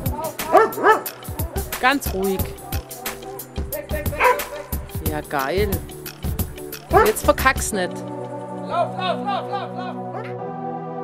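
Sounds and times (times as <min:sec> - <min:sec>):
music with steady drum beat: 0:00.0 - 0:07.8
dog barking: 0:00.4 - 0:01.2, 0:04.2 - 0:04.8, 0:06.9 - 0:07.3, 0:10.1 - 0:10.4.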